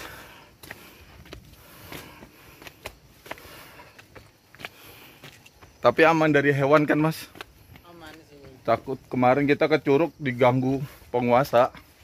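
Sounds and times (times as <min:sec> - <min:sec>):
footsteps on stony dirt path: 0:00.0 - 0:12.0.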